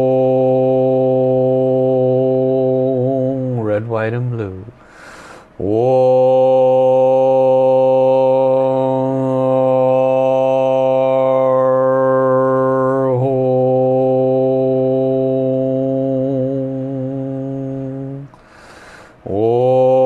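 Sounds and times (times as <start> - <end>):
man chanting a long held note: 0.0 - 4.7, 5.6 - 18.3, 19.3 - 20.0.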